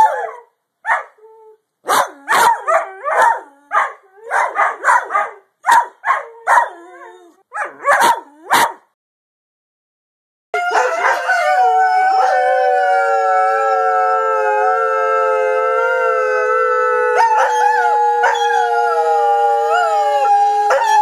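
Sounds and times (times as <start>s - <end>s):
dogs howling: 10.6s - 21.0s.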